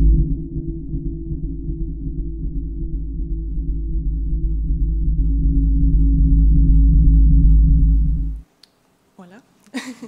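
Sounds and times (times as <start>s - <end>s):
deep steady drone: 0.0s - 8.4s.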